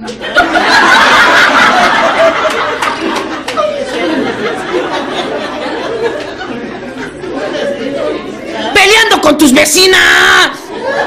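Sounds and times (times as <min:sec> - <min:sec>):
indistinct chatter: 0:01.1 - 0:09.1.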